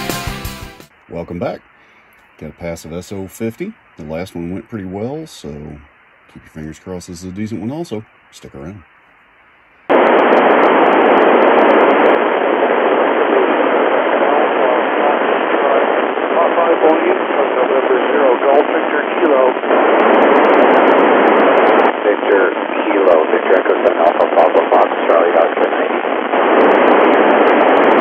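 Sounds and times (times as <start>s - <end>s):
radio receiver hiss: 0.8s - 28.0s
garbled radio voices: 11.9s - 28.0s.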